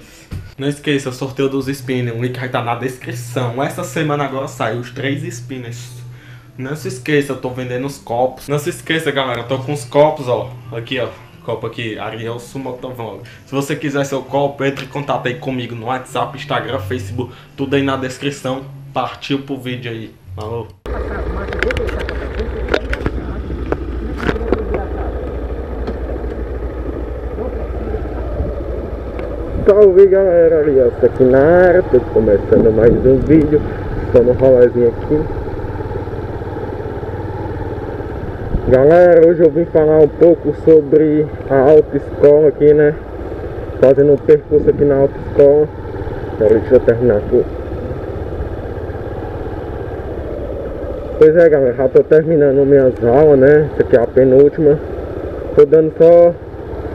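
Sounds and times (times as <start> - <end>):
motorcycle engine idling: 0.3 - 8.0, 20.9 - 56.9.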